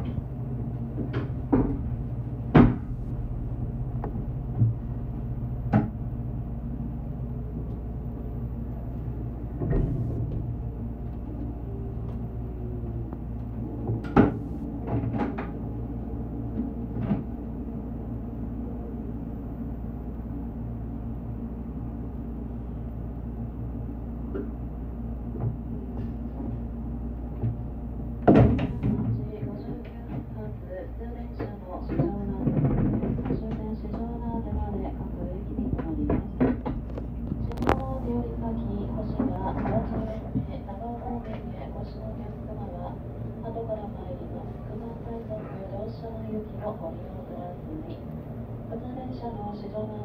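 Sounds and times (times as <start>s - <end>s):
electric train hum: 0.0s - 50.0s.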